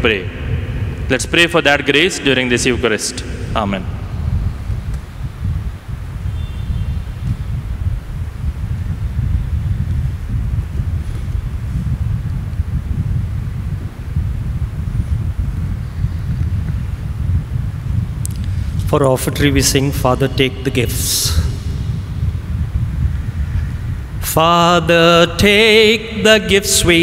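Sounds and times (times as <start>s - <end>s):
air buffeting microphone: 0.0s - 27.0s.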